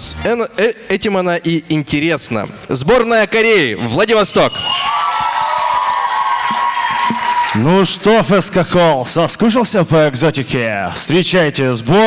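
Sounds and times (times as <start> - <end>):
audience applauding and cheering: 4.5 - 8.3.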